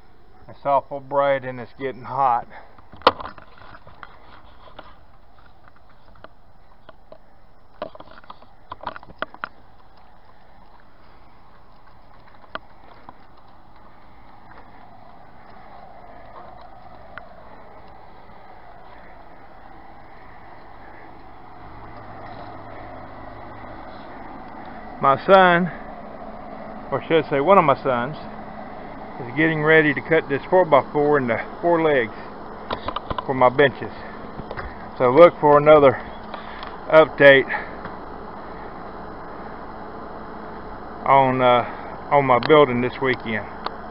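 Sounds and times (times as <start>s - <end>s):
faint low hum: 0.0s - 43.9s
outdoor background noise: 0.0s - 43.9s.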